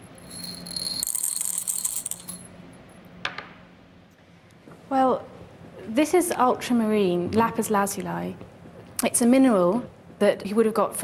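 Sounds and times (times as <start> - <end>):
glass clink: 0.2 - 2.5.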